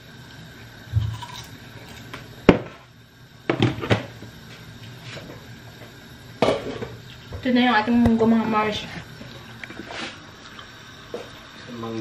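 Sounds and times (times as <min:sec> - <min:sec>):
objects knocking on counter: 0:03.5 - 0:04.1.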